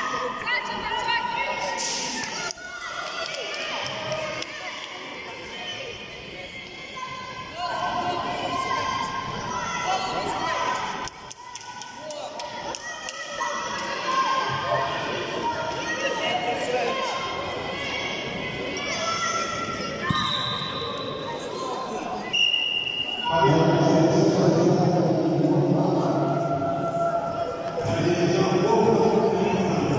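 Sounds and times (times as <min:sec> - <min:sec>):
referee whistle: 0:20.1 - 0:21.3, 0:22.3 - 0:23.6.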